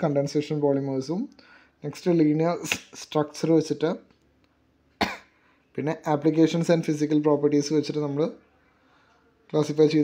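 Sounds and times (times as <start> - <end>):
person coughing: 5.0 - 5.4.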